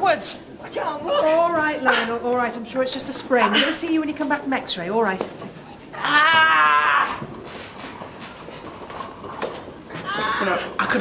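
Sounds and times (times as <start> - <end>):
wheelchair wheels rolling: 6.8 - 11.0.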